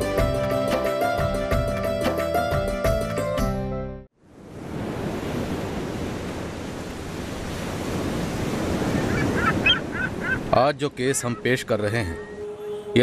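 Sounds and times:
sea surf washing: 4.2s - 13.0s.

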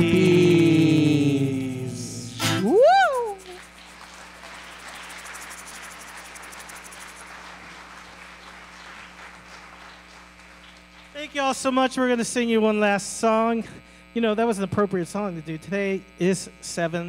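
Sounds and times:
person singing final note: 0.0s - 3.4s
audience applauding: 2.6s - 11.4s.

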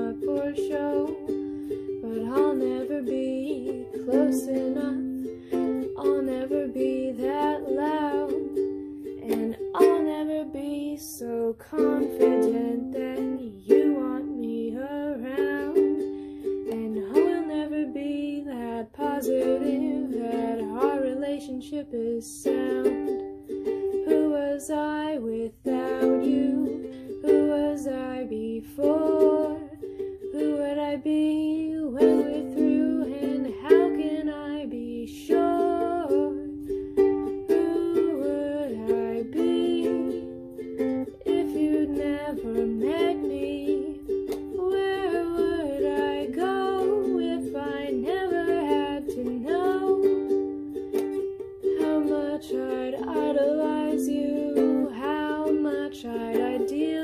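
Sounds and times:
plucked string instrument song: 0.0s - 57.0s.

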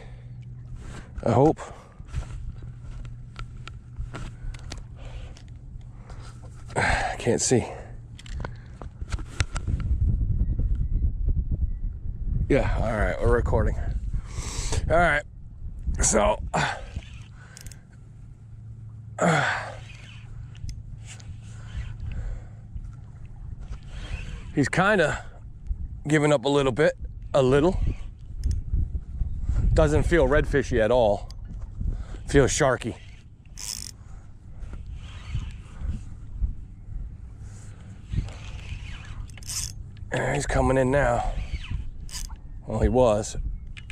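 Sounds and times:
wind buffeting microphone: 0.0s - 18.3s, 19.6s - 43.9s
man sighing heavily: 6.8s - 8.0s, 16.5s - 17.0s, 19.2s - 19.8s
low rumble: 7.8s - 26.1s.

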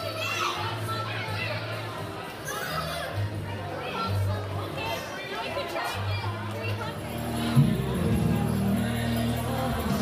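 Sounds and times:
children calling and squealing: 0.0s - 9.2s
faint background music: 0.0s - 10.0s.

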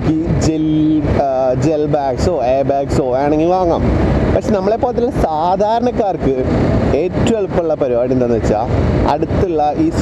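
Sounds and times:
man talking: 0.0s - 10.0s
road and wind noise: 0.0s - 10.0s.

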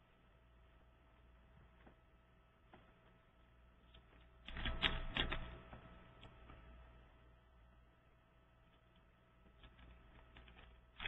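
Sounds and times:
computer keyboard keystrokes: 4.4s - 5.6s.

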